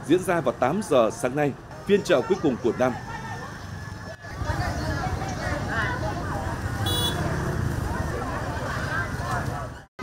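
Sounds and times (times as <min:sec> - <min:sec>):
low traffic rumble: 0:00.0 - 0:09.9
shoppers and vendors talking: 0:00.0 - 0:09.9
short high horn beep: 0:06.9 - 0:07.2.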